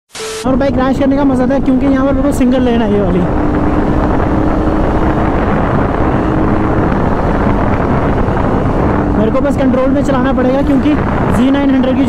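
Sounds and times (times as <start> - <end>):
road noise: 0.1 - 12.0
wind rush on microphone: 0.4 - 12.0
motorcycle engine cruising: 0.5 - 12.0.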